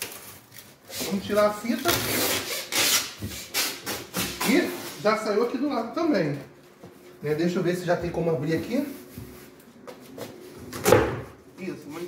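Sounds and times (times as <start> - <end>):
packing tape tearing off cardboard: 0.0 - 5.0.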